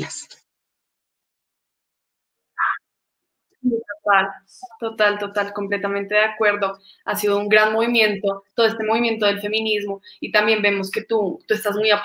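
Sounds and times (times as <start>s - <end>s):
woman speaking: 2.6s - 2.8s, 3.6s - 12.0s.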